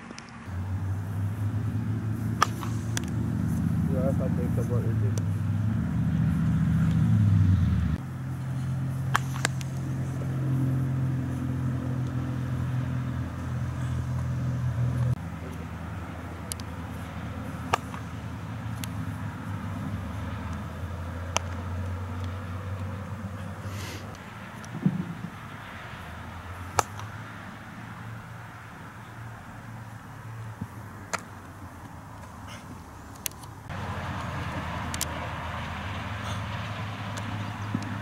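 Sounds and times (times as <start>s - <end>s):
low engine-like hum: 0.3s - 38.0s.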